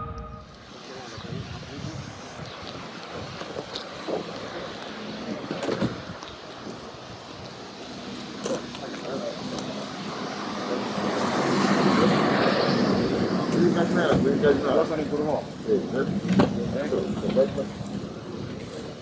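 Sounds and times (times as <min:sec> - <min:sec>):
people chattering: 0:00.0 - 0:19.0.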